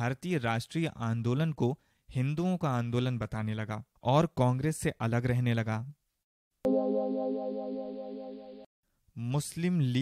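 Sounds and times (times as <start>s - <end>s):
held synthesizer chord: 6.7s - 8.7s.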